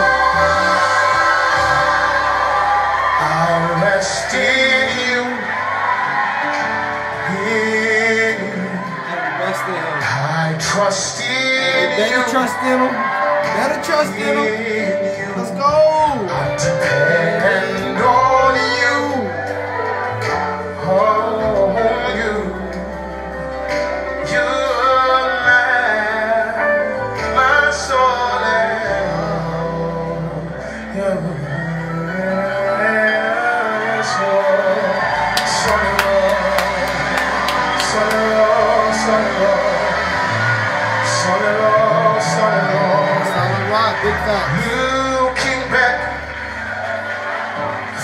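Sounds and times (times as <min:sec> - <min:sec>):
band playing gospel music: 0:00.0 - 0:48.0
singers' voices: 0:00.0 - 0:48.0.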